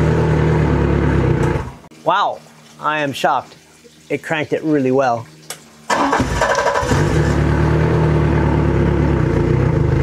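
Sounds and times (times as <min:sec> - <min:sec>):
outboard engine running: 0:06.1 - 0:10.0.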